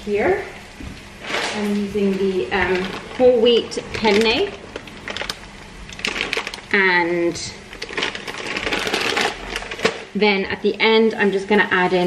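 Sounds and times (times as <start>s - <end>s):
dry pasta rattling in plastic bag: 2.5s - 10.2s.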